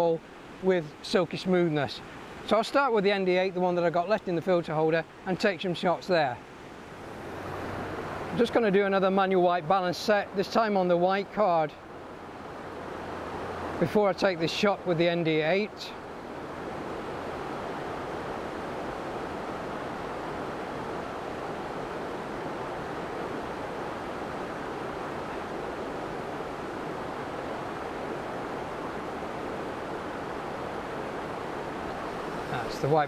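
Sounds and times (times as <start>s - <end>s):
fast-flowing river: 0.0s - 33.0s.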